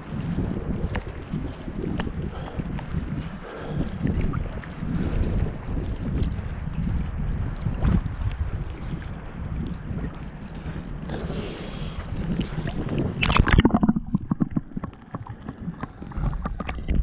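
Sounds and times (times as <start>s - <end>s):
seawater sloshing and lapping: 0.0s - 17.0s
wind buffeting microphone: 0.0s - 17.0s.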